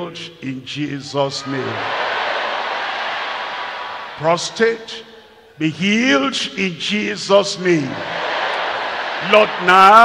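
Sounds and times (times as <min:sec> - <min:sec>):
congregation shouting and praying: 0:00.0 - 0:10.0.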